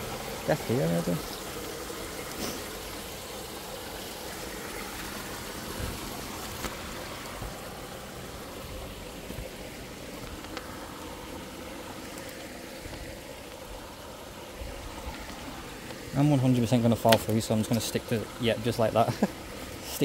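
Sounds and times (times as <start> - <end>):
stream running: 0.0 - 20.0.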